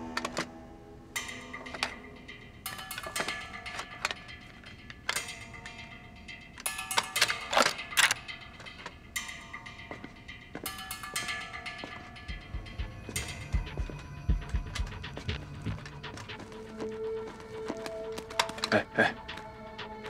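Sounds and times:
metallic mechanism clicks and rattles: 0:00.0 - 0:00.6, 0:01.2 - 0:20.0
tense sustained music tones: 0:00.0 - 0:20.0.

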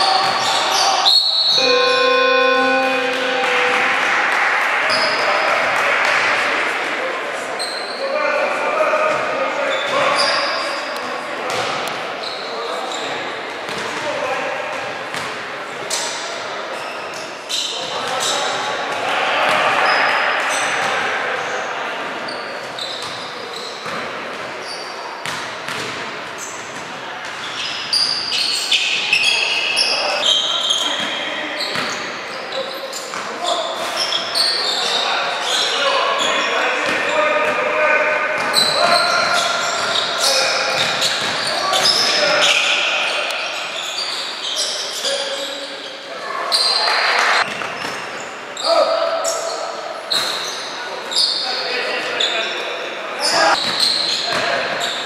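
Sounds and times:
short high squeaks: 0:01.2 - 0:05.2.

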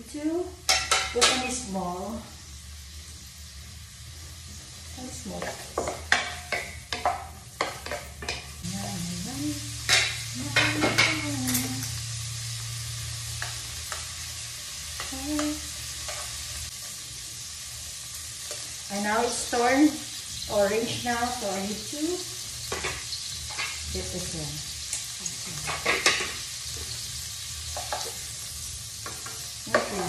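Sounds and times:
shrimp sizzling in hot oil: 0:00.2 - 0:30.0
spatula scraping and tapping pan: 0:05.3 - 0:08.6, 0:29.0 - 0:30.0.

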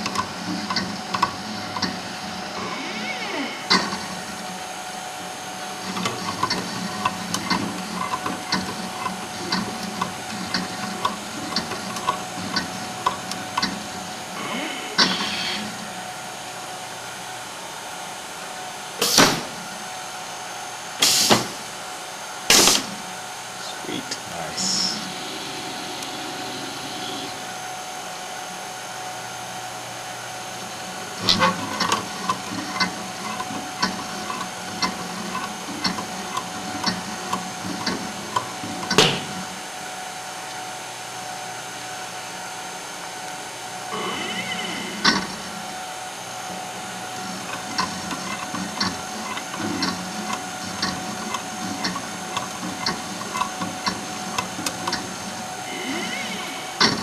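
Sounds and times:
winding machine hum: 0:00.0 - 0:20.9, 0:22.8 - 0:57.0
regular mechanical clicks: 0:05.8 - 0:13.9, 0:31.2 - 0:39.4, 0:47.2 - 0:55.4
brief high whine: 0:43.9 - 0:45.4, 0:55.6 - 0:56.8.

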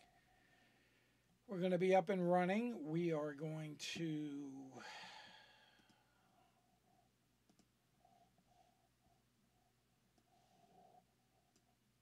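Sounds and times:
faint clicks: 0:07.4 - 0:07.7.

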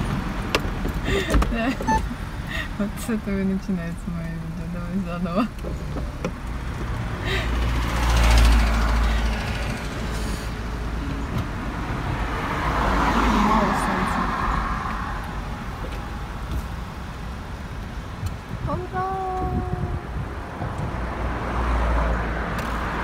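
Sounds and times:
road and wind noise in car: 0:00.0 - 0:23.0.

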